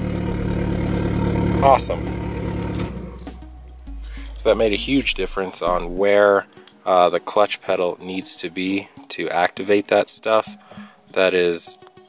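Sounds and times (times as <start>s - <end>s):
car engine idling: 0.0s - 6.0s
faint low musical notes: 0.0s - 11.8s.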